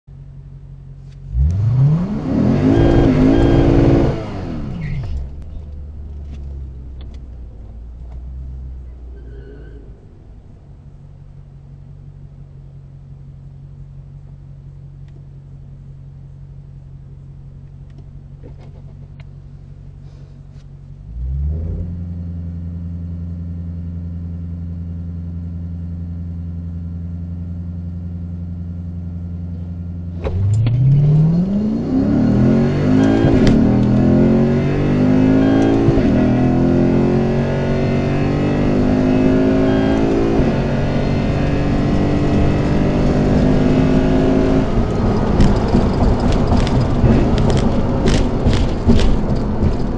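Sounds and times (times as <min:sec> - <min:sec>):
car engine revving: 0:01.0 - 0:12.7, 0:20.9 - 0:49.9.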